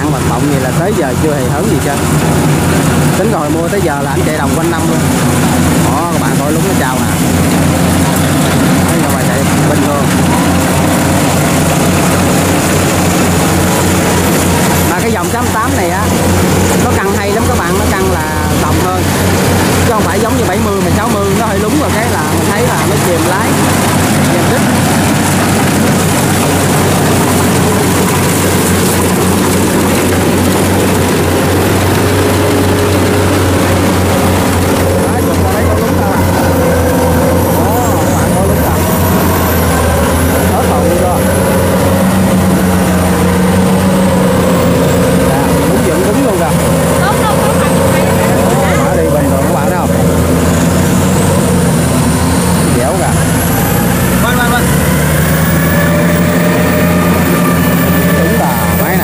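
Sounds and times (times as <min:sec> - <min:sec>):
combine harvester engine droning: 0:00.0 - 0:59.0.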